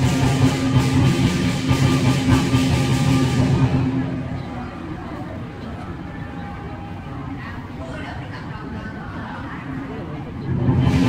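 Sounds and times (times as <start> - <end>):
loud music with drum beat: 0.0 - 4.1.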